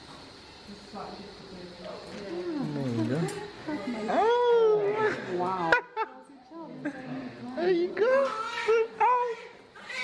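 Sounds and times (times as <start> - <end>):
newborn baby crying: 8.2 - 10.0.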